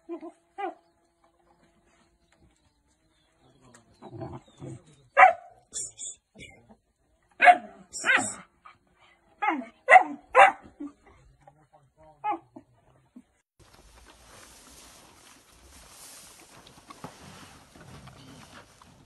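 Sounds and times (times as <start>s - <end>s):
puppies barking and yelping: 7.4s - 10.8s.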